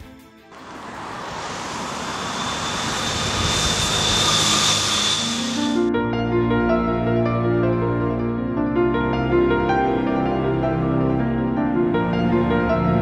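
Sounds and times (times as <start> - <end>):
rising whoosh: 0.5 - 5.9
faint high whistle: 1.3 - 5.9.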